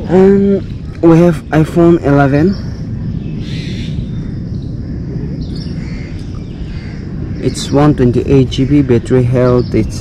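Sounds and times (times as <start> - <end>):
faint bird calls: 0.0 - 10.0
low background rumble: 0.0 - 10.0.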